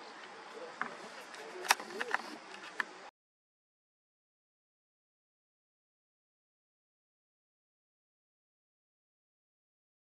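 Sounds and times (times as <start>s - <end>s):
faint voices: 0.0s - 3.1s
low hiss: 0.0s - 3.1s.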